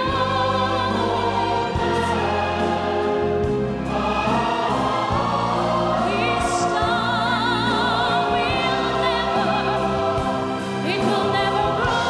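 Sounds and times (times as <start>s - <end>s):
choir singing long chords: 0.0s - 12.0s
orchestra playing: 0.0s - 12.0s.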